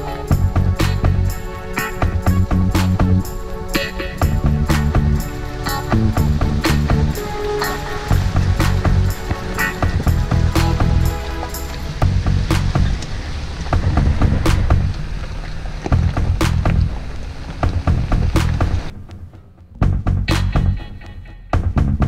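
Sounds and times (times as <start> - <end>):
background music with a beat: 0.0 - 13.0, 13.7 - 15.0, 15.9 - 17.0, 17.6 - 22.0.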